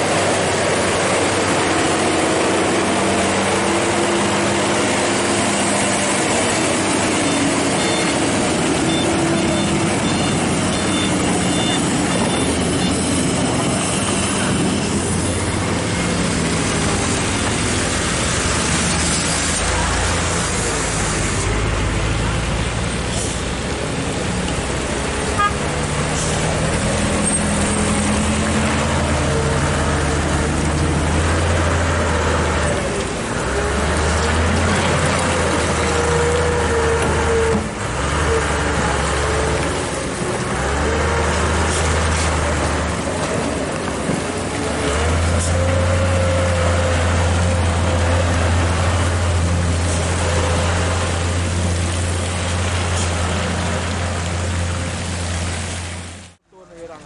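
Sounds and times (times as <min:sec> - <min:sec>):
diesel engine drone: 0:00.0 - 0:56.9.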